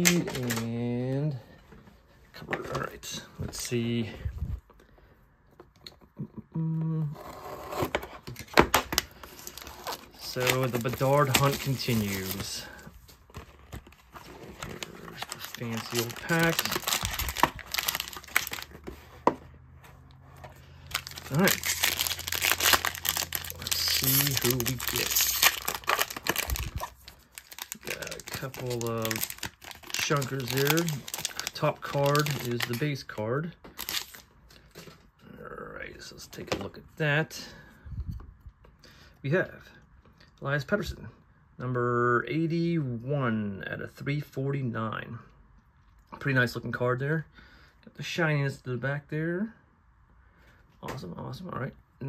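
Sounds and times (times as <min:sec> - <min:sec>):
plastic wrap tearing: 0:08.9 - 0:12.8, 0:13.8 - 0:18.8, 0:20.9 - 0:32.8, 0:33.8 - 0:34.2
blade slitting shrink-wrap: 0:21.0 - 0:32.7.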